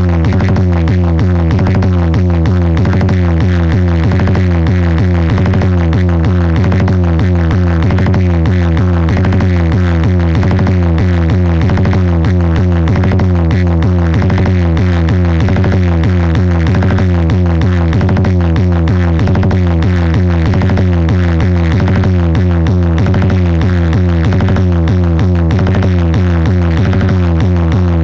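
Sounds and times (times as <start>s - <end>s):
electronic dance music with deep bass: 0.0s - 28.0s.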